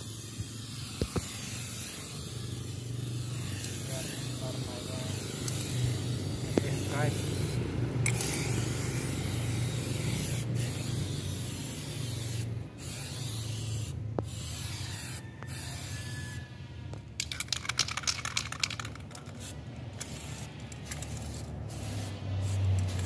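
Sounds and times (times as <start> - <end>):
aerosol spray can hissing: 0.0 - 16.3, 17.2 - 23.0.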